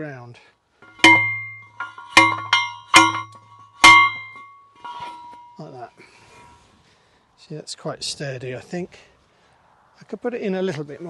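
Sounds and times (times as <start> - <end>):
post driver clanging on stake: 0.8 - 5.7.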